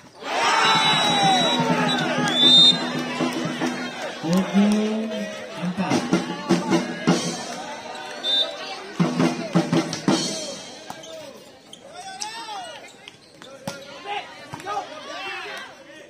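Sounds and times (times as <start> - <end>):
players and spectators shouting: 0.0 - 16.0.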